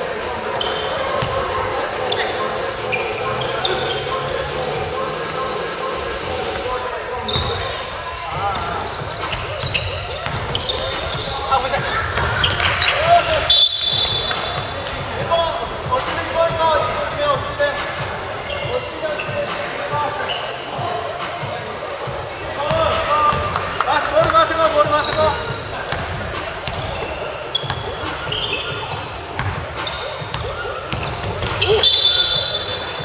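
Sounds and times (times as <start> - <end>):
players shouting: 0.0 - 33.0
sneakers squeaking: 0.0 - 33.0
ball bouncing on wooden court: 29.4 - 31.9.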